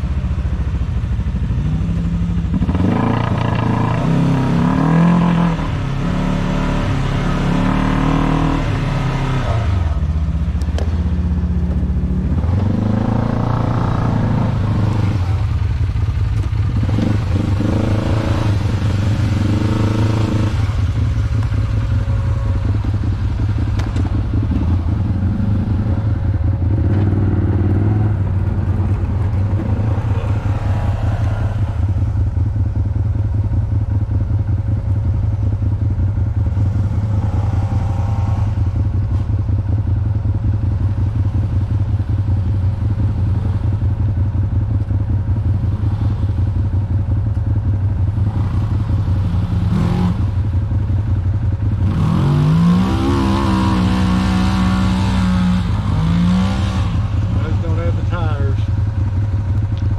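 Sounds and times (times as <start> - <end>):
utility vehicle engine idling: 20.5 - 30.7, 57.0 - 59.9
second vehicle engine revving: 48.1 - 50.6, 51.6 - 59.9.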